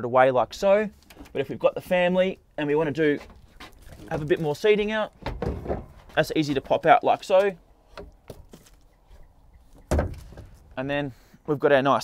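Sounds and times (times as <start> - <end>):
seat thudding onto metal leg: 5.2 - 6.1, 9.8 - 10.7.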